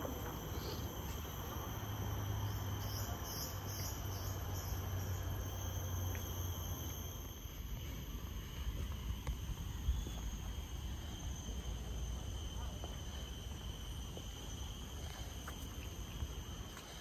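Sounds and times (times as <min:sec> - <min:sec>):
chorus of rainforest insects: 0:00.0 - 0:17.0.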